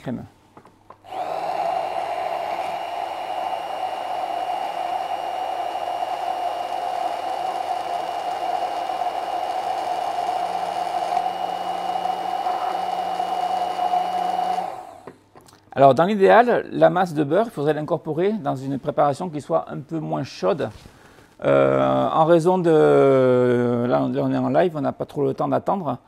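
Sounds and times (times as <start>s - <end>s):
stick blender motor whirring: 1.0s - 15.1s.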